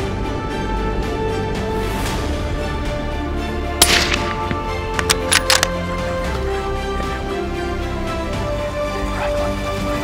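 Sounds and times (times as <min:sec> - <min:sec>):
background music: 0:00.0 - 0:10.0
suppressed rifle shot: 0:03.8 - 0:05.8.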